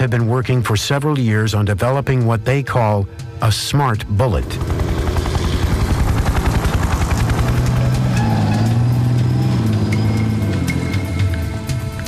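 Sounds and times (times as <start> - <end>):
background music with held notes: 0.0 - 12.0
engine running: 4.3 - 12.0.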